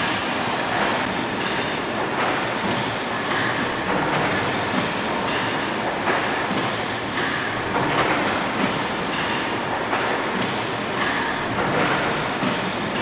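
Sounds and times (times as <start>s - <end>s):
steam engine mechanical clatter: 0.7s - 13.0s.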